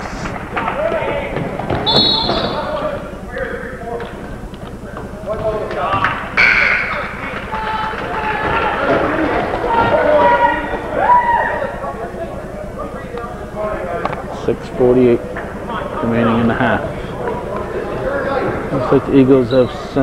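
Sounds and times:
crowd and player voices: 0.0s - 20.0s.

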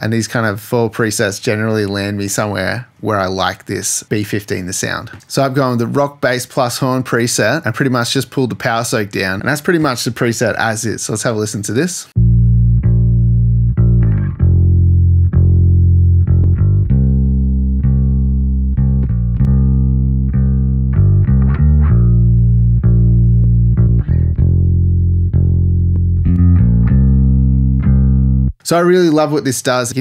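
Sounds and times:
bass guitar plucked notes: 12.2s - 28.6s.

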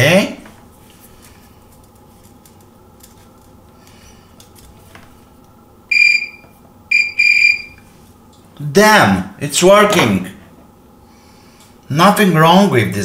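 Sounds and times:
meter continuity beeps: 5.9s - 7.8s.

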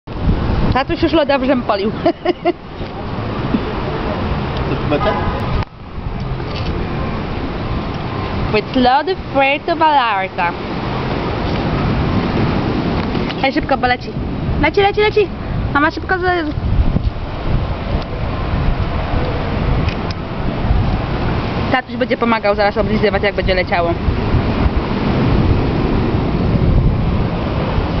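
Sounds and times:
wind buffeting microphone: 0.1s - 28.0s.

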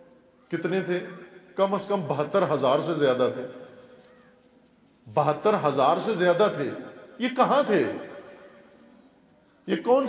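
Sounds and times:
man lecturing: 0.5s - 3.4s, 5.1s - 8.1s, 9.6s - 10.0s.

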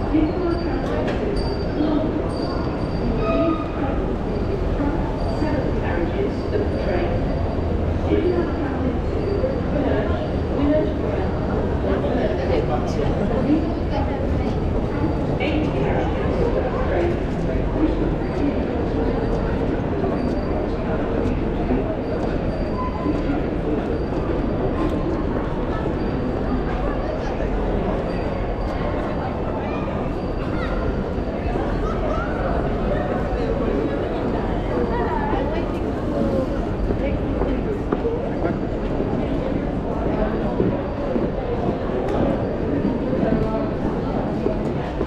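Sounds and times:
crowd walking and talking: 0.0s - 45.0s
murmur of distant voices: 0.0s - 45.0s.

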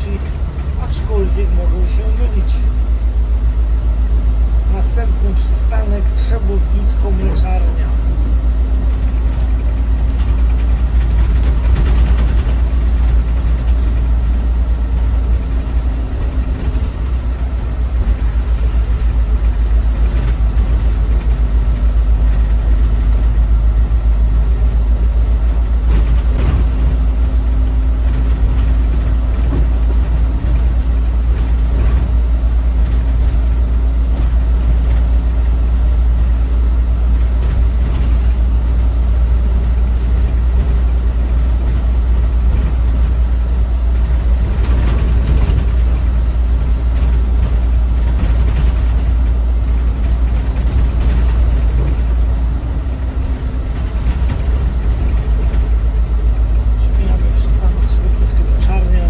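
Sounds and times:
bus engine rumble: 0.0s - 59.0s
road noise on wet road: 0.0s - 59.0s
steady hum: 0.0s - 59.0s.

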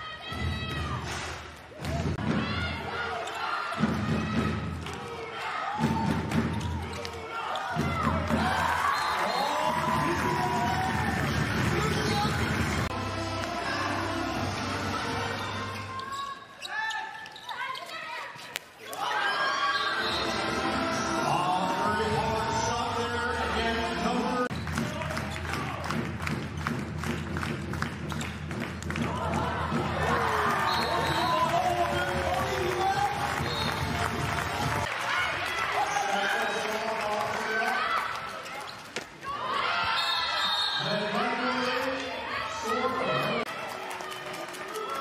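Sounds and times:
voices in a hall: 29.0s - 45.0s
players shouting calls: 29.1s - 34.8s.

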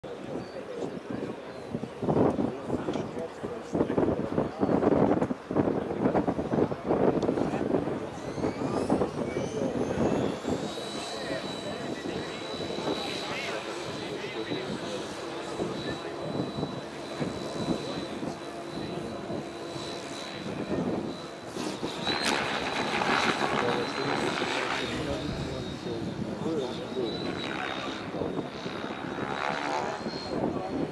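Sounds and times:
electric helicopter whine: 0.1s - 30.9s.

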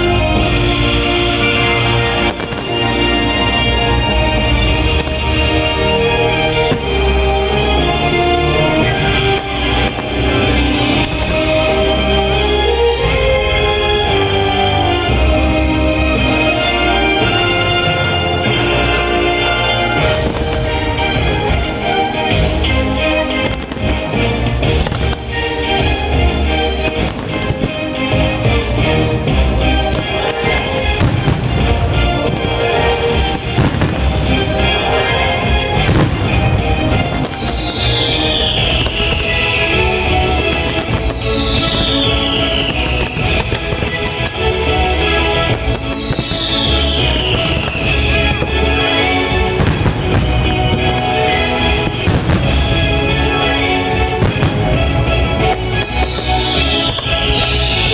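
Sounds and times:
firework sharp bangs: 0.0s - 7.8s, 8.8s - 11.8s, 19.6s - 28.5s, 29.2s - 57.9s
fireworks bursting: 0.0s - 57.9s
loud music: 0.0s - 57.9s
long falling whistle: 40.8s - 43.5s, 45.6s - 48.3s.

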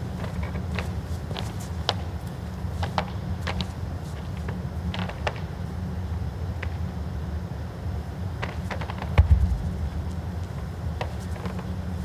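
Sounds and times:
low hum of arena ambience: 0.0s - 12.0s.

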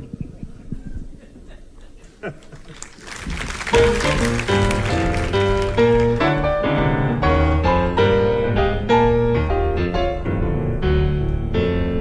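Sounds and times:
jazz piano: 3.4s - 12.0s.

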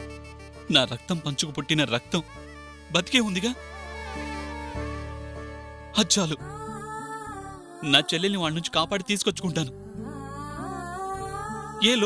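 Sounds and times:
man speaking: 2.9s - 3.6s, 7.8s - 9.7s.

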